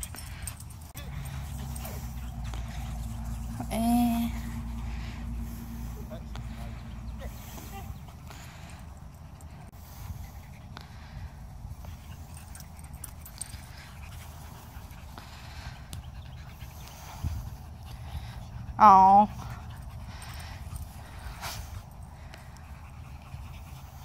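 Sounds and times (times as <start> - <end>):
low steady rumble: 0.0 - 24.0
small dogs panting: 0.0 - 24.0.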